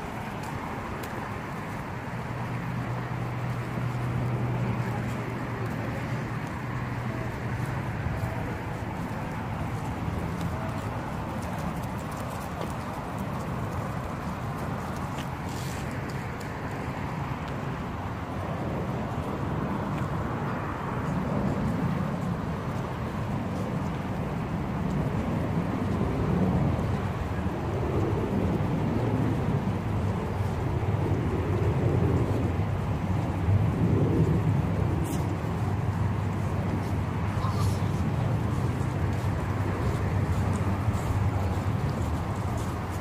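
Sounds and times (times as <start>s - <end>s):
low outdoor rumble: 0.0s - 43.0s.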